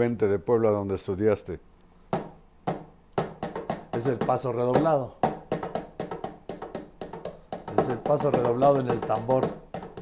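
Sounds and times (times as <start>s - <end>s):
march drum taps: 2.1s - 10.0s.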